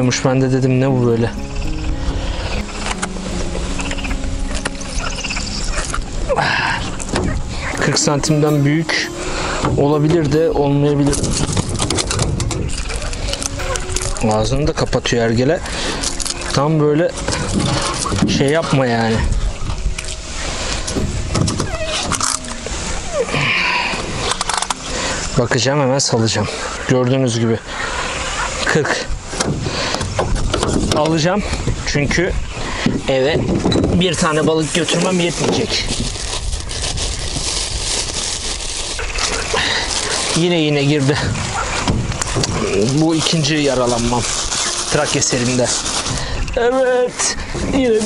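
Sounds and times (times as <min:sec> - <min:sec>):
wind rumbling on microphone: 0:00.0 - 0:08.1, 0:09.6 - 0:48.0
rustling water splash: 0:01.0 - 0:26.9, 0:34.1 - 0:48.0.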